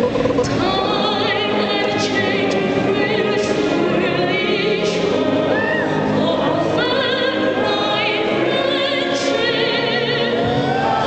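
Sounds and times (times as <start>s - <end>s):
choir singing with vibrato: 0.0s - 11.0s.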